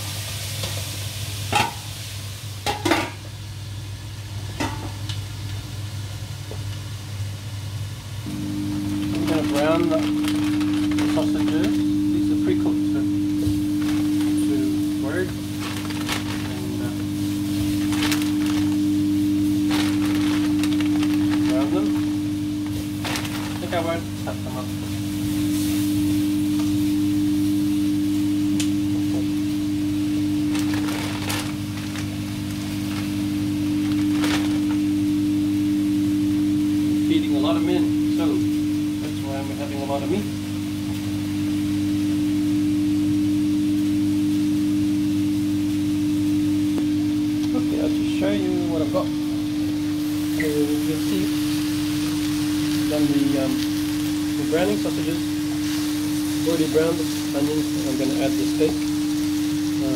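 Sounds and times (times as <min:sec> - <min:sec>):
low electrical hum: 0:00.0 - 0:59.9
plastic bag crackling: 0:08.3 - 0:24.7, 0:30.2 - 0:35.2, 0:50.0 - 0:59.9.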